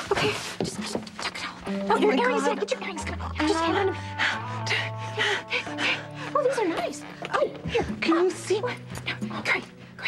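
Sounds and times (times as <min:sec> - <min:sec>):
scuffling noises: 0:00.0 - 0:01.4
faint background music tone: 0:00.0 - 0:10.0.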